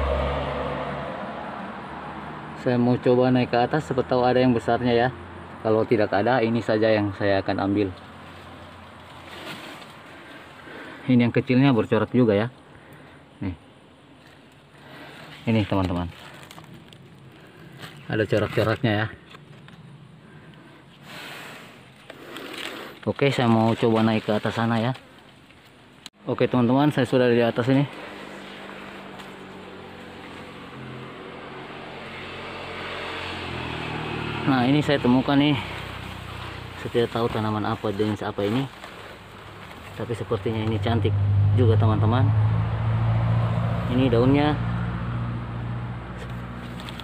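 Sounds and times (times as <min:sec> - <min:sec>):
engine humming: 0:00.0 - 0:47.0
faint forest background noise: 0:00.0 - 0:47.0
leaves rustling: 0:06.6 - 0:11.7, 0:13.9 - 0:41.4, 0:46.2 - 0:47.0.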